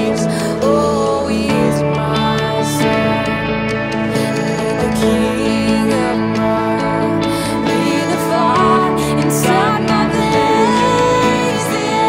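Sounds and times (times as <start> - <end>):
band playing slow song: 0.0 - 12.0.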